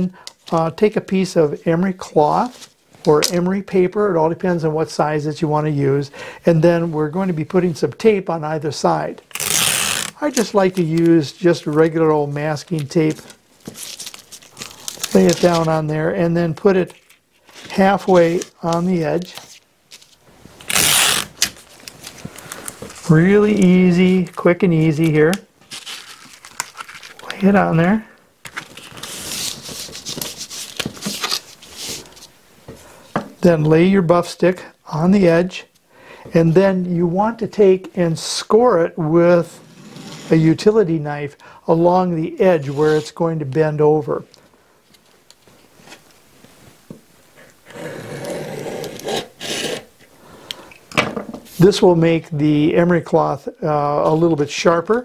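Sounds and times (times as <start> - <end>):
masking tape ripping off roll: 9.3 - 10.6, 18.3 - 22.8.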